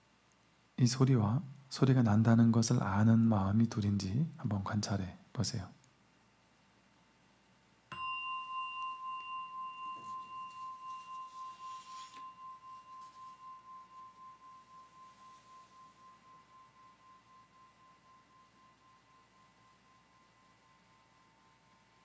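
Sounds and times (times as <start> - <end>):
bell ringing with wavering tone: 7.9 - 22.0.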